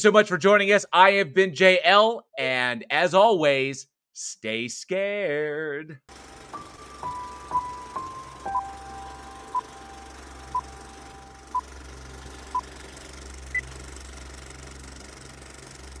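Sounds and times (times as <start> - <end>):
steady low hum: 6.1 - 16.0.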